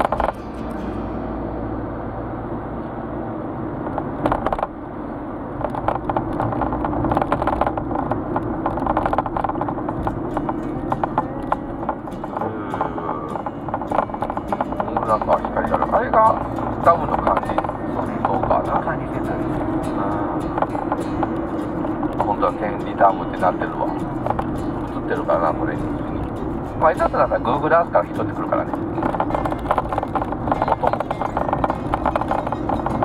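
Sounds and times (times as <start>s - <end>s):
small clicks and knocks: 0.0s - 0.4s, 3.8s - 4.7s, 5.6s - 19.6s, 24.1s - 25.0s, 28.0s - 33.0s
car engine and road noise drone: 0.0s - 33.0s.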